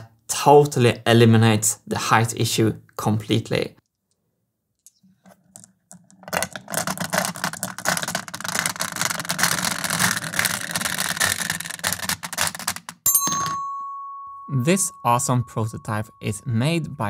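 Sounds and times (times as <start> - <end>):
steel marbles clattering: 4.9 - 13.1.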